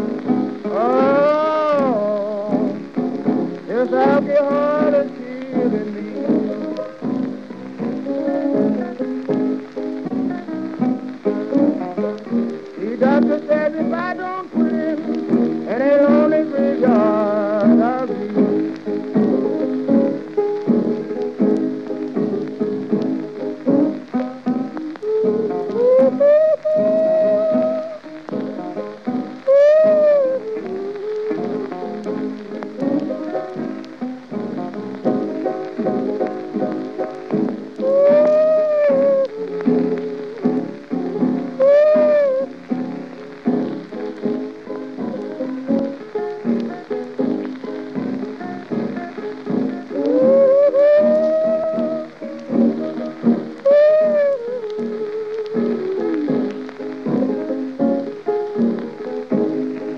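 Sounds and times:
bending guitar notes: 0:00.0 - 0:59.9
blues piano: 0:00.0 - 0:59.9
record crackle and hiss: 0:00.0 - 0:59.9.

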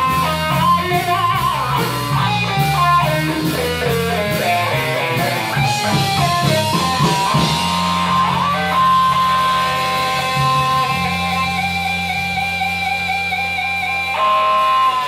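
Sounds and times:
bass guitar sustained notes: 0:00.0 - 0:15.0
electric guitar sustained notes: 0:00.0 - 0:15.0.

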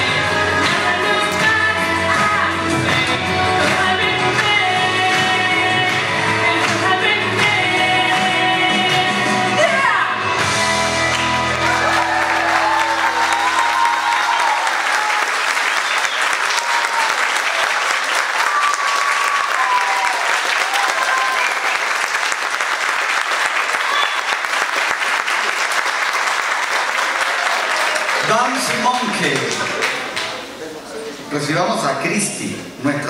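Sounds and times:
audience clapping: 0:00.0 - 0:09.7, 0:10.3 - 0:30.6
people cheering: 0:09.6 - 0:30.5.

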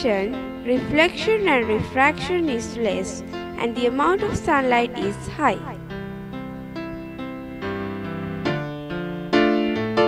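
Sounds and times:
piano-like keyboard notes: 0:00.0 - 0:10.0.

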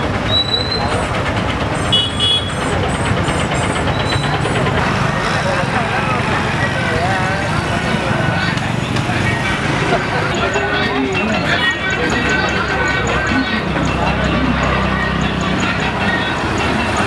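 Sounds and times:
many people talking: 0:00.0 - 0:17.0
motor traffic passing: 0:00.0 - 0:17.0.

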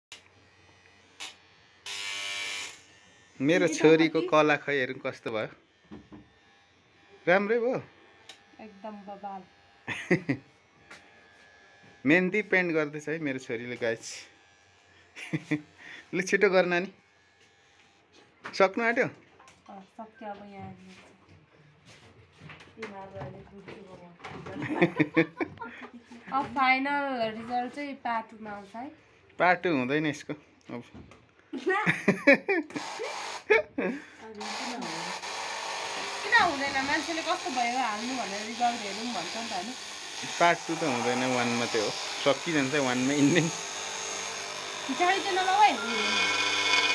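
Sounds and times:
faint electrical buzz: 0:00.1 - 0:16.2
woman laughing: 0:03.6 - 0:04.4, 0:09.9 - 0:10.4, 0:15.2 - 0:15.7, 0:24.5 - 0:26.4, 0:31.6 - 0:34.3
electric blower hissing: 0:32.7 - 0:33.6, 0:34.3 - 0:46.9.

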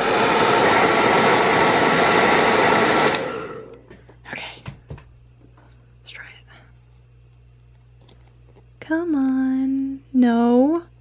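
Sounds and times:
hair dryer blowing: 0:00.0 - 0:04.0.

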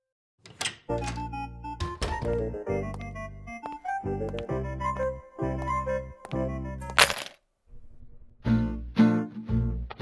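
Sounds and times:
keys jingling onto desk: 0:06.8 - 0:07.4.

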